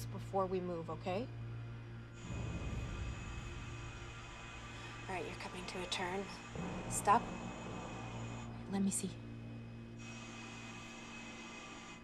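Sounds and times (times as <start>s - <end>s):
low rumbling drone: 0.0s - 12.0s.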